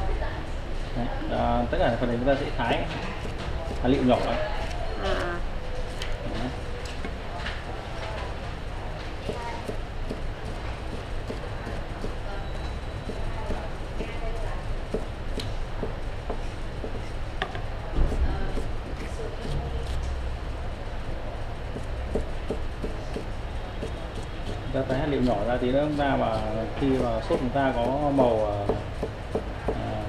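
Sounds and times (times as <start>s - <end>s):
knife chopping on cutting board: 9.2s - 12.2s, 14.9s - 20.0s, 21.8s - 24.6s, 26.3s - 30.0s.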